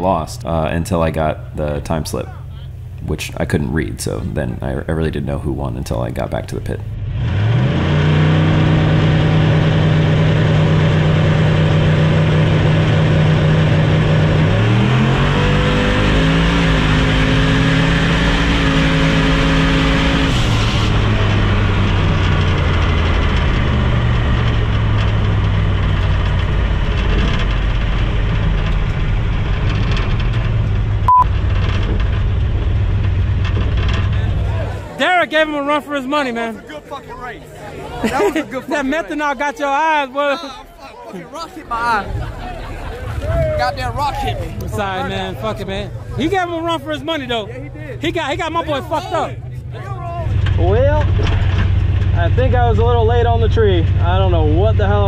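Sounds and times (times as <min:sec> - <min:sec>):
turbocharged engine revving: 0:00.0 - 0:40.3, 0:41.9 - 0:55.0.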